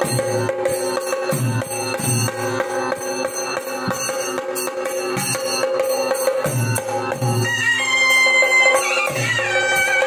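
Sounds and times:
festival drumming: 0.0s - 10.0s.

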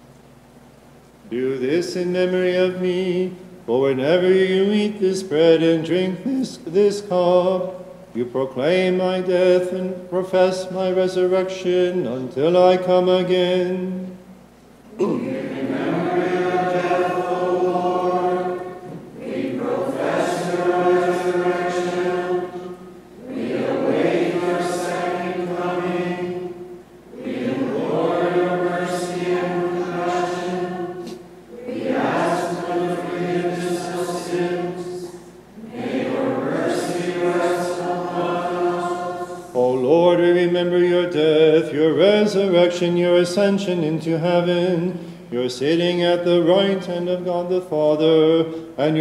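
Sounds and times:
liturgical chant: 1.2s - 14.2s, 14.9s - 49.0s.

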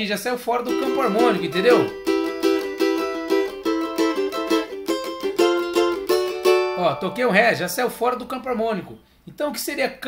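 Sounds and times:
small guitar strummed: 0.7s - 7.4s.

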